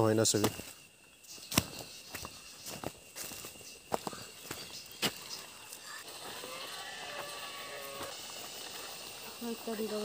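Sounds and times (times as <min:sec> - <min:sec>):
people shifting on dry ground: 0:00.0 - 0:10.0.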